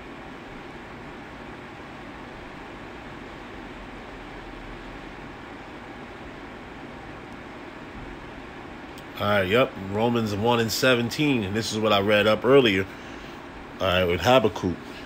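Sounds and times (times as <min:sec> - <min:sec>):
background hiss: 0:00.0 - 0:15.0.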